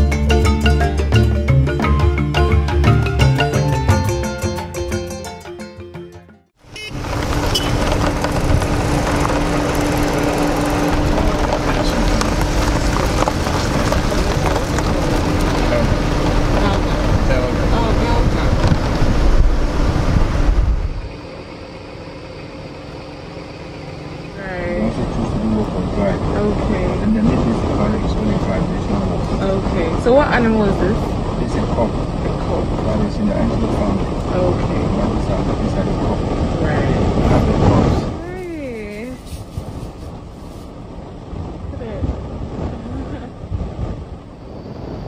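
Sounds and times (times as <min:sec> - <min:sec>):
car wind and road noise: 0:06.5 - 0:45.0
indistinct voices: 0:08.8 - 0:18.8, 0:24.3 - 0:39.2.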